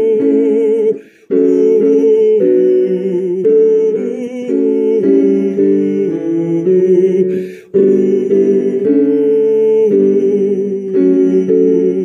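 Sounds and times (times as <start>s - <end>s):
musical accompaniment: 0.0s - 12.0s
person humming a hymn with vibrato: 0.0s - 12.0s.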